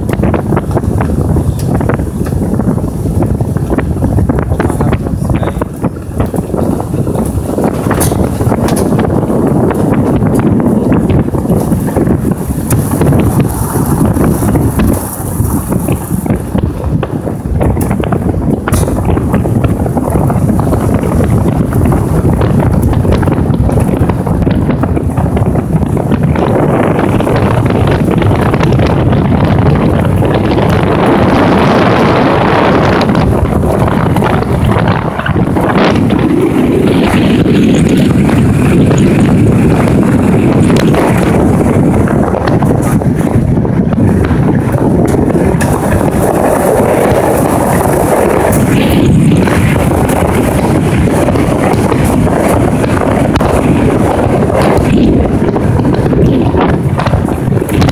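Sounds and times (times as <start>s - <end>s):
vehicle running and road noise: 0.0s - 57.9s
wind buffeting microphone: 0.0s - 57.9s.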